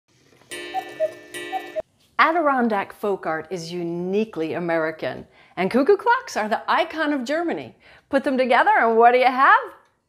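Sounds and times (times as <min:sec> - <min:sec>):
cuckoo clock call: 0:00.5 - 0:01.8.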